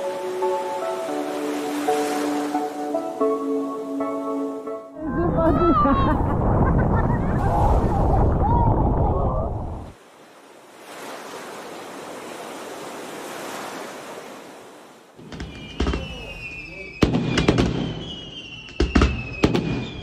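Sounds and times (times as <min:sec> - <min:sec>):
fireworks bangs: 0:15.2 - 0:20.0
high falling whistles: 0:15.4 - 0:20.0.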